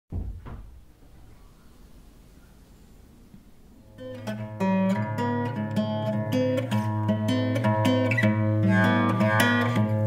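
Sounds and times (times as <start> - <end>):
dull thumps: 0.1 - 1.1
faint low room rumble: 0.1 - 5.3.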